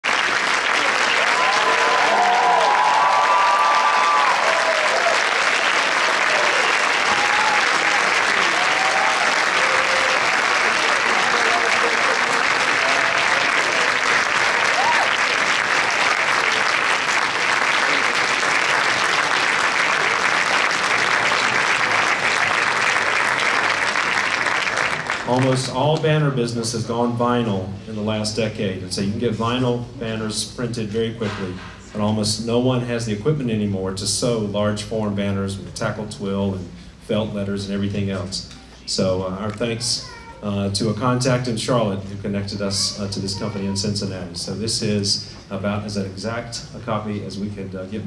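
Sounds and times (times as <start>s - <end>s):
audience applauding: 0.0s - 26.0s
voices cheering: 0.7s - 23.4s.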